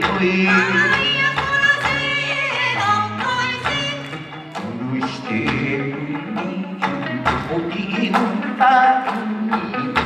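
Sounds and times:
electric guitar melody: 0:00.0 - 0:10.0
steady beat: 0:00.0 - 0:10.0.

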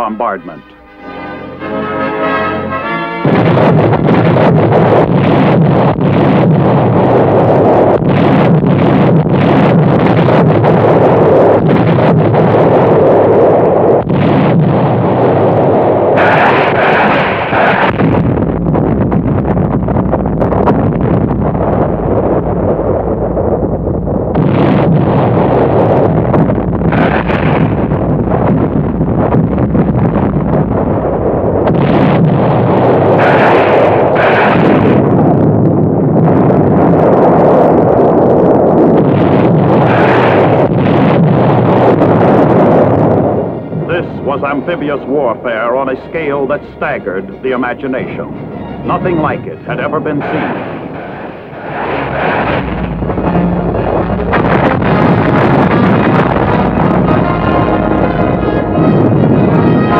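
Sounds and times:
explosions: 0:00.0 - 0:59.9
heavy gunfire: 0:02.2 - 0:13.2, 0:13.9 - 0:22.9, 0:24.3 - 0:37.0, 0:38.7 - 0:59.9.

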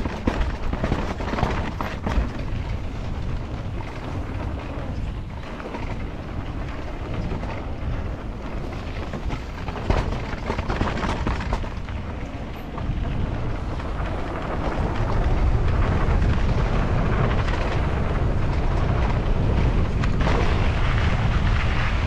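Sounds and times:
bike rattling over rocks: 0:00.0 - 0:22.0
bike tyres on dirt: 0:00.0 - 0:22.0
wind rumbling on microphone: 0:00.0 - 0:22.0.

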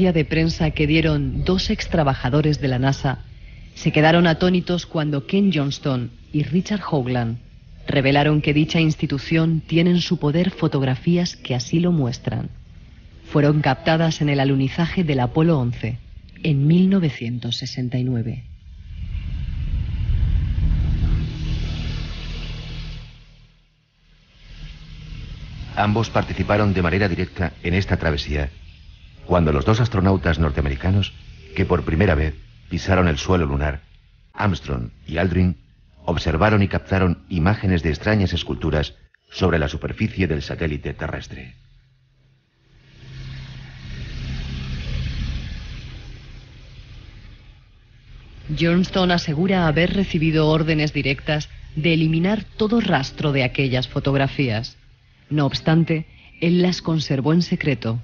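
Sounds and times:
deep rumbling with hiss: 0:00.0 - 0:58.0.

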